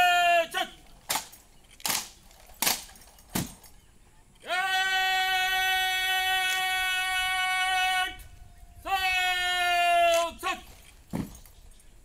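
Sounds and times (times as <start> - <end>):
ceremonial horn call: 4.5 - 10.7
dull thump: 11.1 - 11.5.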